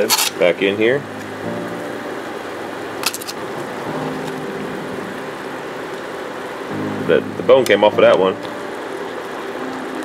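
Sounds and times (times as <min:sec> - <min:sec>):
marinade simmering hiss: 0:00.0 - 0:10.0
low hum: 0:01.0 - 0:10.0.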